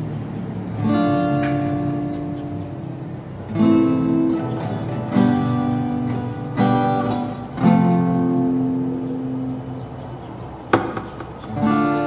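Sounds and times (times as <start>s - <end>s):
acoustic guitar strumming: 0.0s - 12.0s.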